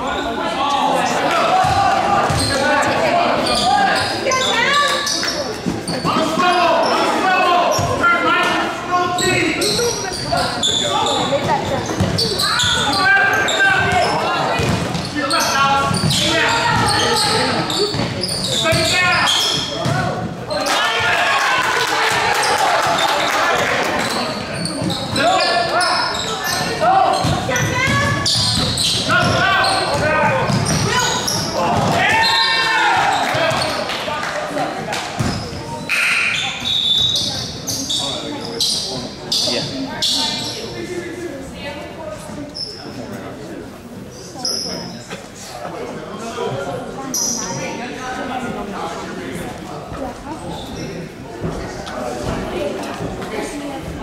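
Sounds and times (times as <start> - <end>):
voices and shouts: 0.0 - 38.5
basketball bouncing on hardwood: 27.2 - 30.9.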